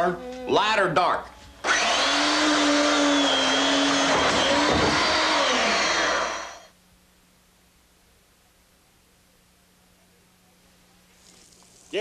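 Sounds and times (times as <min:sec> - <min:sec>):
power tool motor running: 0:01.6 - 0:06.7.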